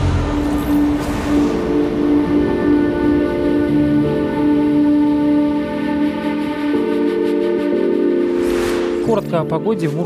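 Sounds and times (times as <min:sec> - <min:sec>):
rising whoosh: 0:08.2 - 0:09.1.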